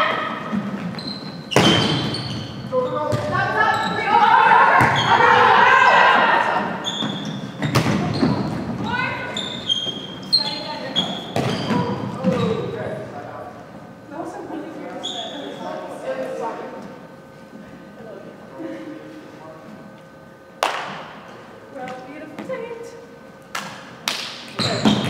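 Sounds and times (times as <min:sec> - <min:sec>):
sneakers squeaking on floor: 0:00.0 - 0:05.5, 0:06.6 - 0:12.8, 0:14.8 - 0:15.9, 0:24.5 - 0:25.0
players shouting: 0:03.3 - 0:06.8
volleyball struck with smacks: 0:07.6 - 0:08.2.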